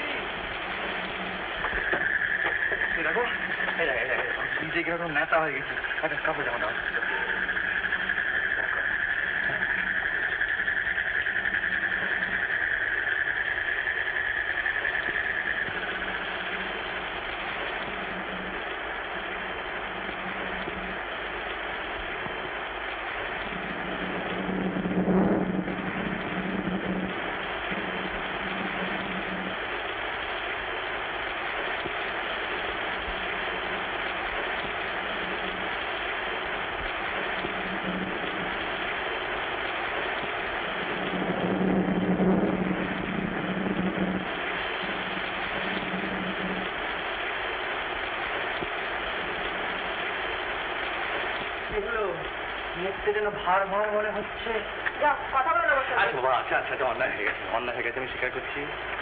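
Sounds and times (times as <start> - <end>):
high steady tone: 0.0 - 57.5
hiss-like background noise: 0.0 - 59.0
low hum: 0.0 - 59.0.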